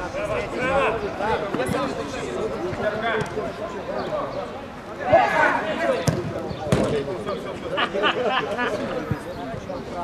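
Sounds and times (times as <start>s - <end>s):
players shouting: 5.0s - 6.2s.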